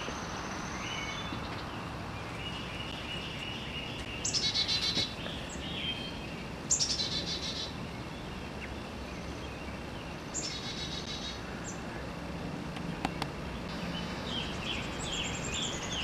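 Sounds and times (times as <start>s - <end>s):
songbird singing high trills: 0.0s - 11.8s, 13.5s - 16.0s.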